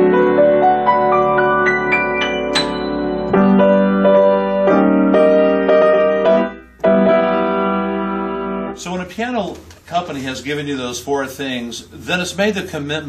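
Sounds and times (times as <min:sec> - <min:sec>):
piano chords: 0:00.0 - 0:09.0.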